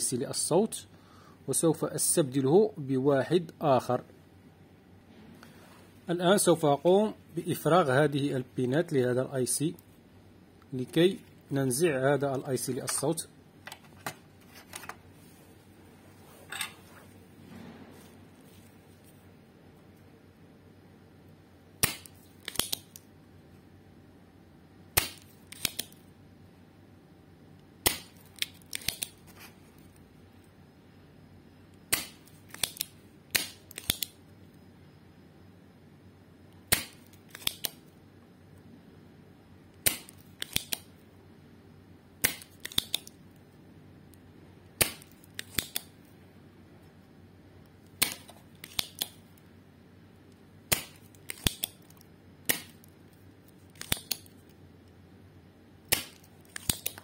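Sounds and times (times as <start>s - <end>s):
desoldering pump snapping: 21.8s - 23.0s, 25.0s - 26.0s, 27.8s - 29.2s, 39.8s - 40.9s, 42.2s - 43.1s, 48.0s - 49.2s, 50.7s - 52.8s, 53.7s - 54.3s, 55.9s - 57.0s.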